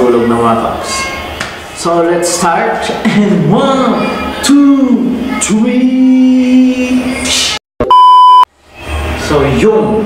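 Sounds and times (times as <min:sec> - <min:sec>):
electronic bleep: 0:07.8 - 0:08.5.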